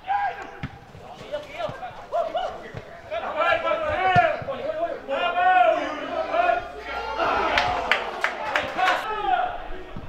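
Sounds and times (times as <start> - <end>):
players shouting: 0.0 - 10.0.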